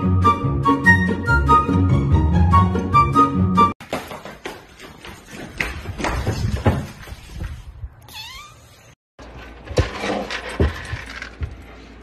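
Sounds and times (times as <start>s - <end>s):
cat meowing: 8.1s - 8.8s.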